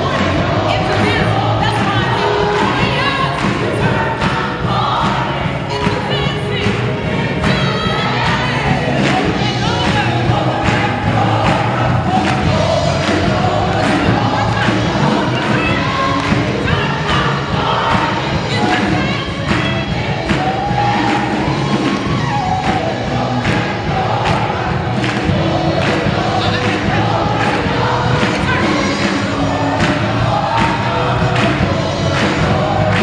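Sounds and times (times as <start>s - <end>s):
audience clapping along: 0.0s - 33.0s
gospel choir singing with band: 0.0s - 33.0s
live musical accompaniment: 0.0s - 33.0s.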